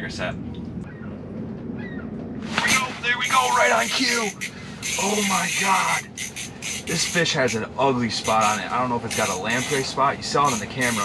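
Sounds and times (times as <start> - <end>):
low steady hum: 0.0 - 11.0
man exclaiming loudly: 2.7 - 4.4, 5.0 - 6.0.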